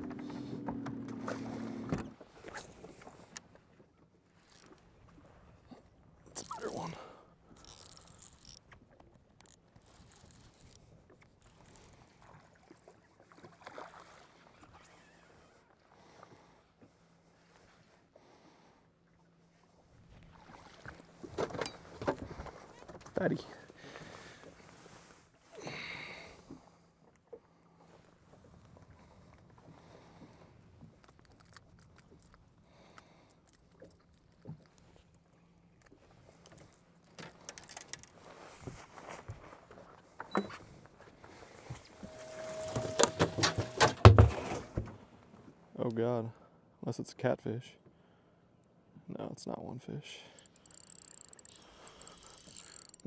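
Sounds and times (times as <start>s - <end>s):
gear clicks and knocks: 50.4s - 53.0s.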